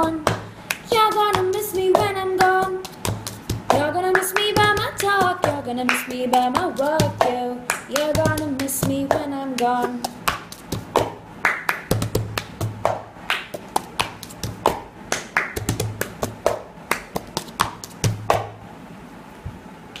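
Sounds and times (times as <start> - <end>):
hand claps: 0.1 - 18.6.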